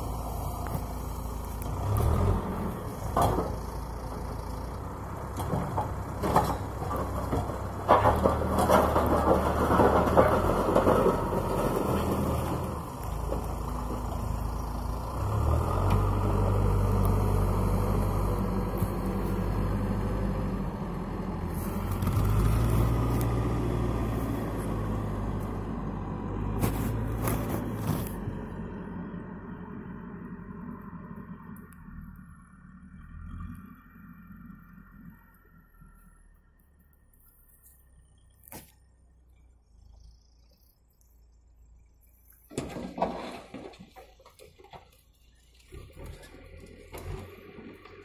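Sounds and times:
diesel engine under load: 0.0s - 48.0s.

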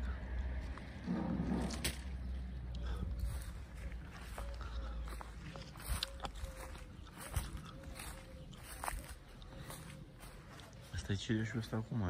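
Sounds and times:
footsteps through dry grass: 2.9s - 12.0s.

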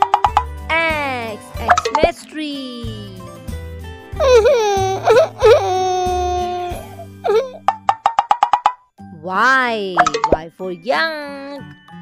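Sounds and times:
children's background music: 0.0s - 12.0s
high cartoonish voice crying out: 4.2s - 7.6s.

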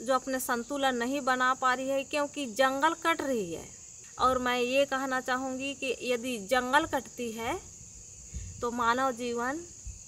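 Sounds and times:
woman speaking: 0.0s - 7.7s, 8.6s - 9.7s
crickets chirping: 0.0s - 10.0s.

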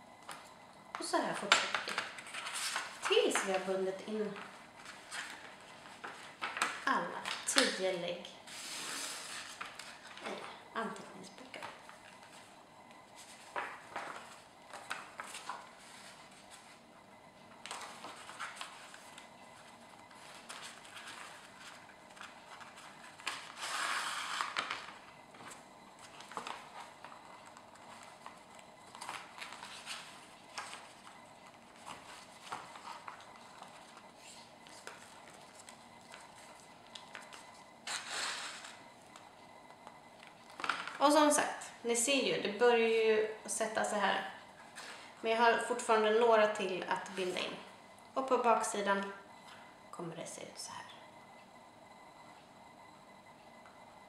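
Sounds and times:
paper pages rustling: 1.4s - 7.8s, 8.5s - 16.8s, 17.5s - 39.2s.

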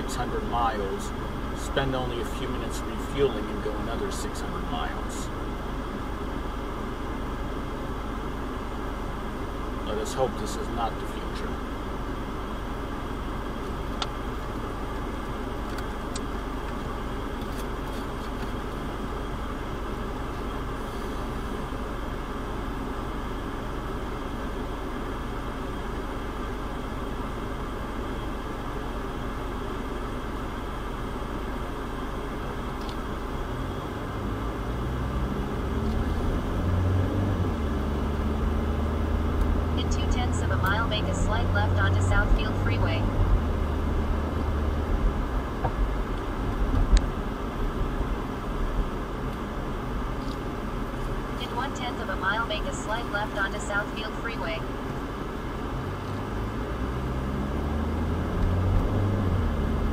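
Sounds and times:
car cabin hum: 0.0s - 59.9s
road noise: 0.0s - 59.9s
car engine accelerating: 32.4s - 59.9s.

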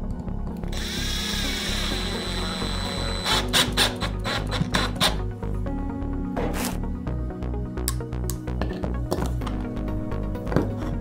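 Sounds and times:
electric drill whining: 0.7s - 4.9s.

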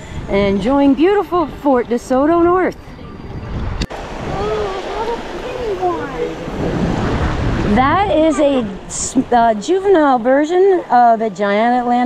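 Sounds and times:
wind buffeting microphone: 0.0s - 11.2s
shallow surf washing: 3.4s - 11.1s.

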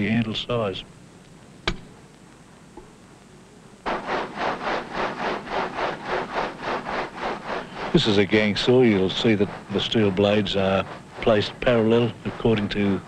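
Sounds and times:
stone saw grinding rhythmically: 3.9s - 13.0s.

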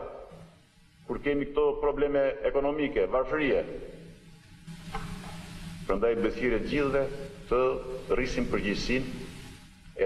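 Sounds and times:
faint hiss: 0.0s - 10.0s
steady low hum: 0.0s - 10.0s
man speaking into microphone: 1.1s - 4.0s, 5.9s - 9.3s.

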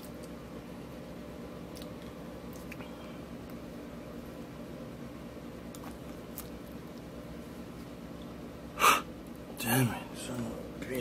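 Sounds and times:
man breathing sharply: 8.8s - 9.1s.

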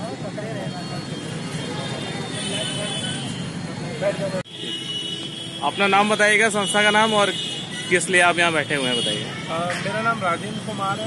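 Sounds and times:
indistinct voices talking: 0.0s - 11.0s
traffic noise: 0.0s - 11.0s.

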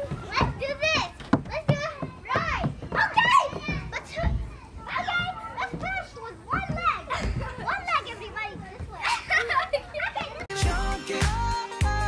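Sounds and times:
young children chattering: 0.0s - 10.6s.

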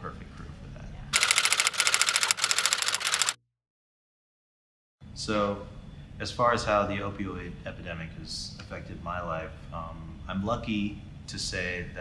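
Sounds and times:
typewriter keystrokes clacking: 1.2s - 3.4s.

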